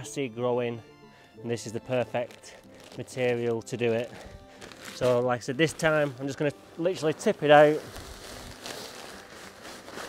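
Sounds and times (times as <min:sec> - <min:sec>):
compost pouring from plastic bag: 0:02.1 - 0:10.0.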